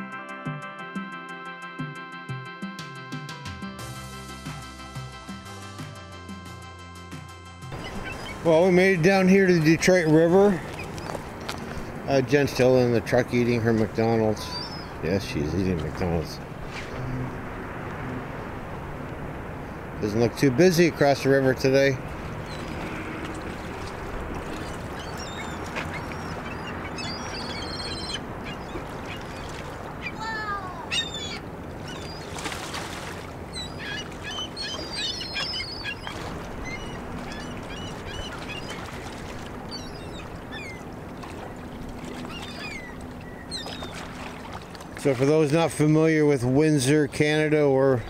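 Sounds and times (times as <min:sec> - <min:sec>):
outdoor background noise: 0:07.6 - 0:48.0
waterbirds calling: 0:07.6 - 0:48.0.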